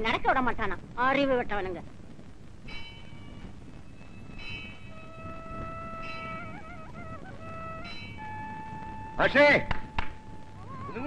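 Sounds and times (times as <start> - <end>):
steady held musical tone: 2.6 - 11.0
temple bell ringing: 2.7 - 3.4, 4.1 - 5.0, 6.0 - 6.6, 7.8 - 10.5.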